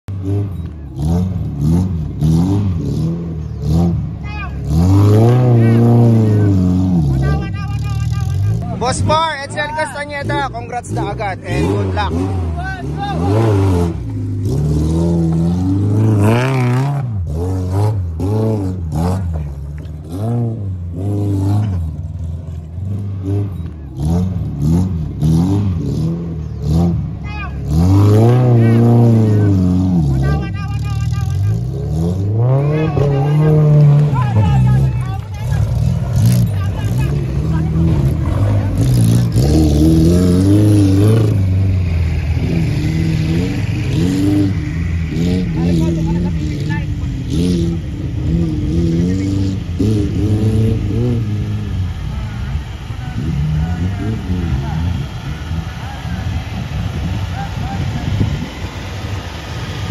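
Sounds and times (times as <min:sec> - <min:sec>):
car engine revving under load: 0:00.0 - 0:59.9.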